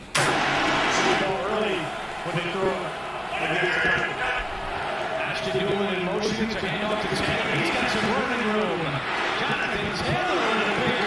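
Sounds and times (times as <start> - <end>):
commentator's voice: 0.9 - 4.5, 5.1 - 11.0.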